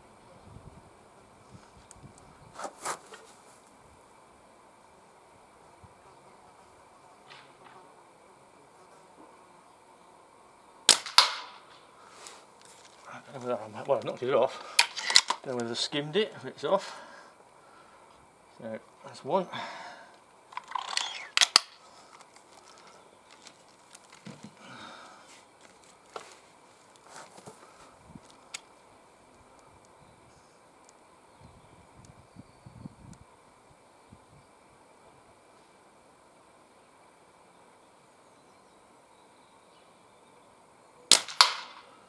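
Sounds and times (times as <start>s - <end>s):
air rifle shot: 10.9s - 11.6s, 41.1s - 41.9s
pellet striking target: 10.9s - 11.6s, 41.1s - 41.8s
sharp clicks: 20.5s - 22.5s.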